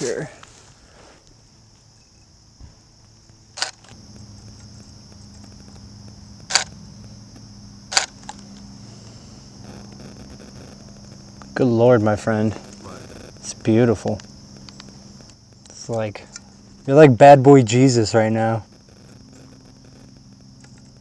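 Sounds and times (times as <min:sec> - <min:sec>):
high insect drone: 0:00.0 - 0:21.0
camera shutter clicks: 0:03.6 - 0:04.0, 0:06.5 - 0:06.7, 0:07.9 - 0:08.4.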